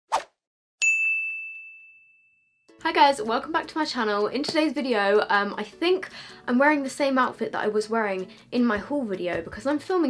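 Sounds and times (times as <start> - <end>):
brief swish: 0.1 - 0.4
bell-like ding: 0.8 - 2.7.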